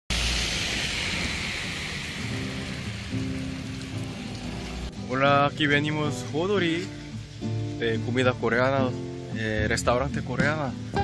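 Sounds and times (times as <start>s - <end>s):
hissing noise: 0.1s - 11.0s.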